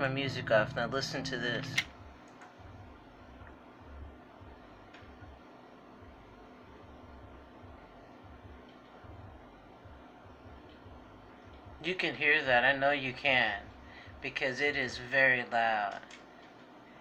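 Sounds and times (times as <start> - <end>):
muffled bass music thuds: 0.0 - 14.9.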